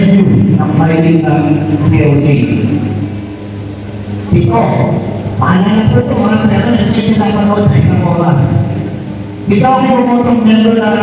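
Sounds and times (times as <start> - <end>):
man speaking over loudspeaker: 0.0 - 3.0, 4.3 - 11.0
steady low hum: 0.0 - 11.0.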